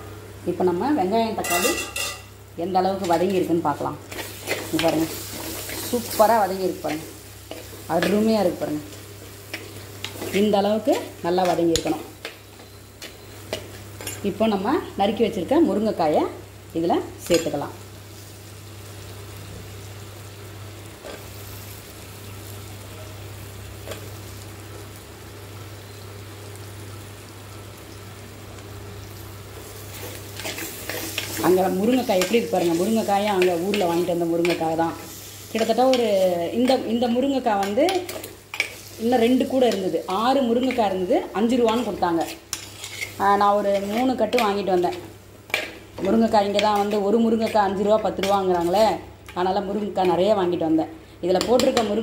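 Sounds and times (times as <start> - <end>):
vegetables sizzling in oil: 0.0 - 52.0
metal spoon scraping pot: 41.7 - 43.2.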